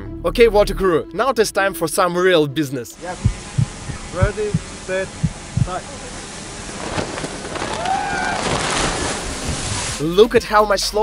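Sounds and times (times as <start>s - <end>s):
rushing wind and water: 3.0s - 10.2s
divers splashing into water: 3.2s - 10.0s.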